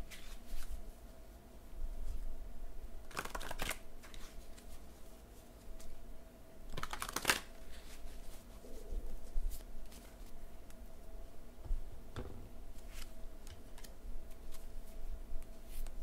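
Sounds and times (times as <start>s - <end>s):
cards being shuffled: 0.1s - 0.7s, 3.1s - 4.7s, 6.7s - 8.0s, 12.7s - 14.8s.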